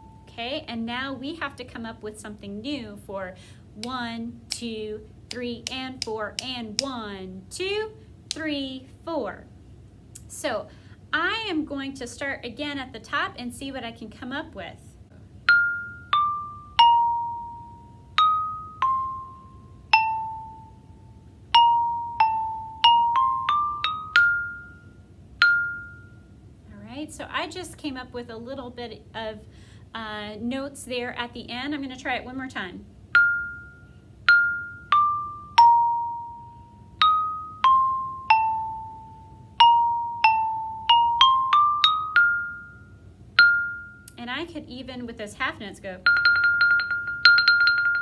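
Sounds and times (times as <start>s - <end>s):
xylophone notes ringing: 15.5s - 26.3s, 33.2s - 44.2s, 46.0s - 48.0s.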